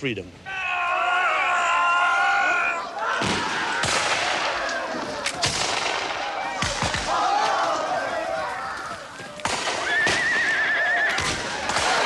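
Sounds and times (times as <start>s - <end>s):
sharp cracks: 3.0s - 8.0s, 9.3s - 12.0s
horse whinnying: 9.8s - 11.3s.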